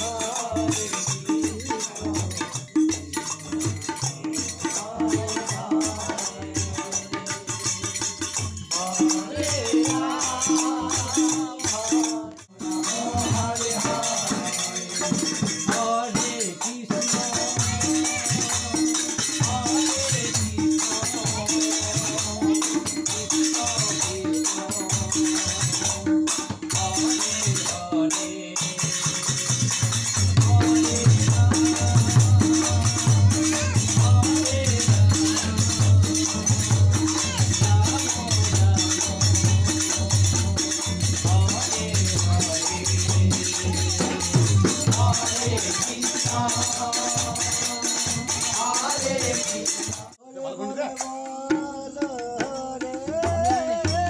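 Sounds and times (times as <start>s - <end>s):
group singing devotional songs: 0.0s - 54.0s
jingling hand cymbals: 0.0s - 54.0s
drum strokes: 28.9s - 50.1s.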